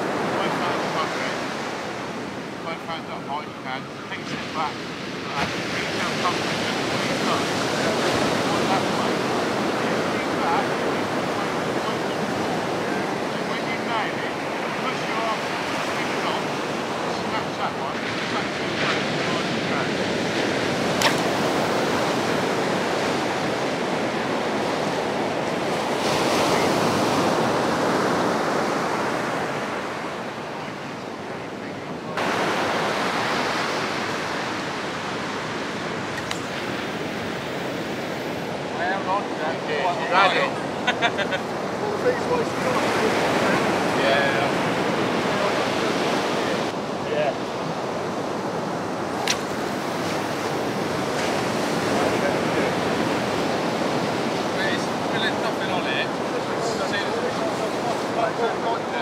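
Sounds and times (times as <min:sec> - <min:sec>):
surf washing up beach: 0:00.0 - 0:59.0.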